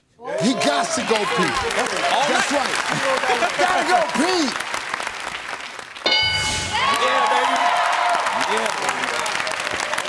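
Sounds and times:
audience applause: 0:00.4 - 0:06.1, 0:06.7 - 0:10.0.

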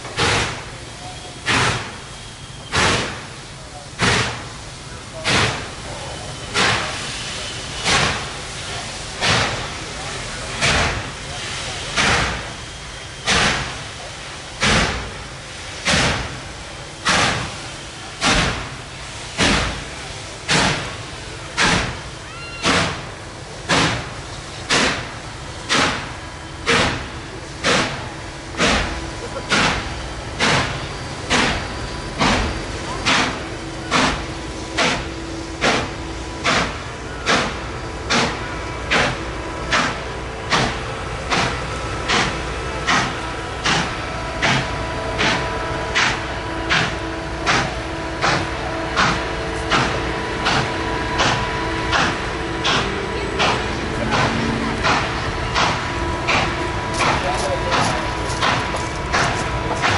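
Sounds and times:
steam hissing: 0:00.0 - 0:59.9
steam locomotive chuffing: 0:00.0 - 0:59.9.

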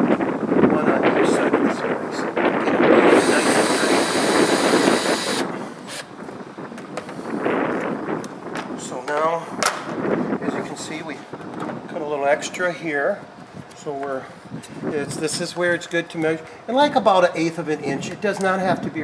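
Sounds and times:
cordless drill motor whining: 0:03.0 - 0:06.2.

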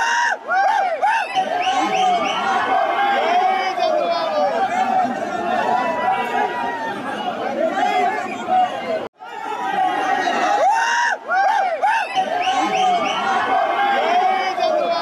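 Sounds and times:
crowd of men talking: 0:00.0 - 0:15.0.

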